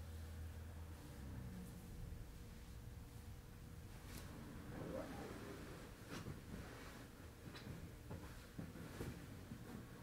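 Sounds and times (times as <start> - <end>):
soft brushes on floor mat: 0.0 - 10.0
clothing rustling: 0.9 - 10.0.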